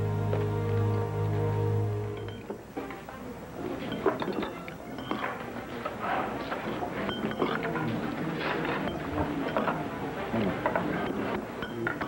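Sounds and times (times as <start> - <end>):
faint tableware clatter: 2.2 - 12.0.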